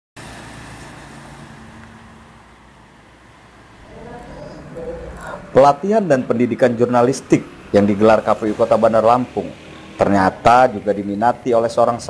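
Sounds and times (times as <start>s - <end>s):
vehicle engine low hum: 0.2s - 11.2s
road traffic noise: 0.2s - 12.0s.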